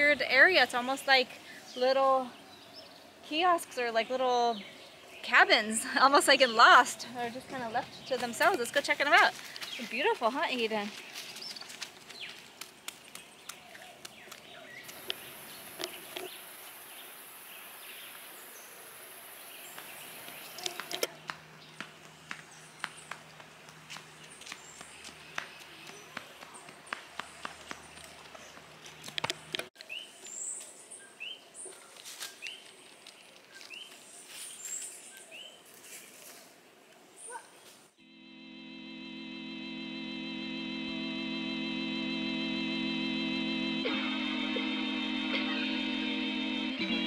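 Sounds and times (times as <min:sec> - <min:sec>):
outdoor ambience: 0:00.0 - 0:47.0
footsteps crunching on dry leaves: 0:07.5 - 0:17.0, 0:31.7 - 0:36.5
steady high hiss: 0:14.8 - 0:21.1.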